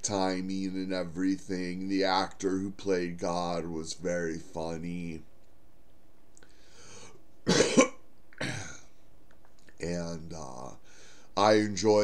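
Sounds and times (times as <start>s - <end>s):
man drawing breath: 6.4s - 7.2s, 10.8s - 11.4s
man coughing: 7.5s - 8.9s.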